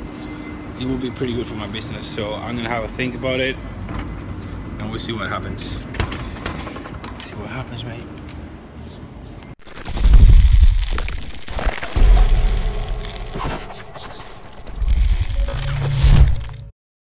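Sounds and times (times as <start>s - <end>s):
crackling fizzing sparks: 9.6s - 16.7s
deep booms: 9.6s - 16.7s.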